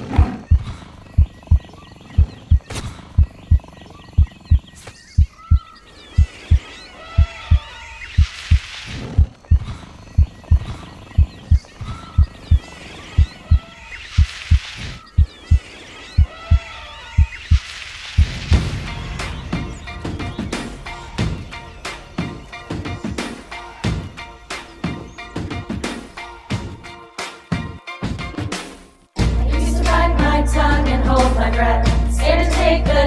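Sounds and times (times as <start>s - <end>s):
low heartbeat-like thumps: 0.0s - 15.6s, 16.2s - 17.6s, 18.2s - 21.5s
jungle bird and animal calls: 0.0s - 22.5s.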